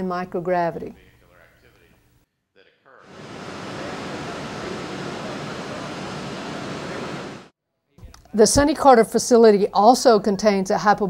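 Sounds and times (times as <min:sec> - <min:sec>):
indoor pool hall ambience: 0:00.0 - 0:10.5.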